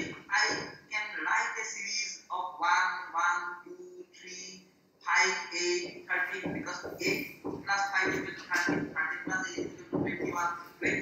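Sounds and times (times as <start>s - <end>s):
person talking over video call: 0.0s - 11.0s.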